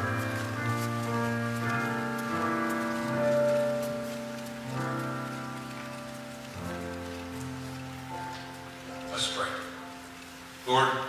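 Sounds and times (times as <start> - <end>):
keyboard church music chords: 0.0 - 11.0.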